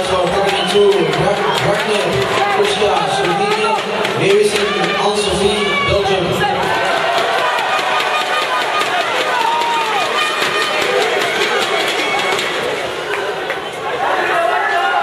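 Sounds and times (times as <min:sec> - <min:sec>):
crowd talking and calling out: 0:00.0 - 0:15.0.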